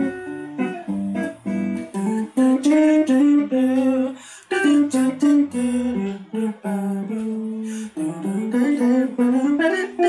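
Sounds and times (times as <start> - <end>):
electric guitar jazz line: 0.0 - 10.0
person humming: 0.0 - 10.0.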